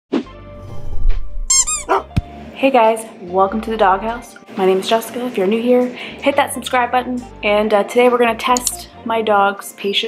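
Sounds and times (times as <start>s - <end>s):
high arching squeaks: 1.5s - 2.0s.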